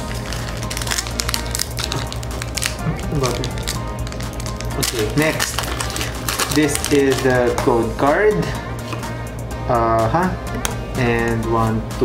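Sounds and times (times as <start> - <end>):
foil wrapper crinkling: 0.0 - 7.6
background music: 0.0 - 12.0.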